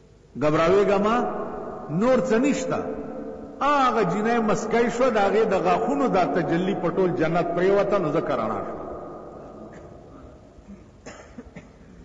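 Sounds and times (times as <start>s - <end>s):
faint background hiss: 0.0s - 12.0s
person coughing: 9.6s - 12.0s.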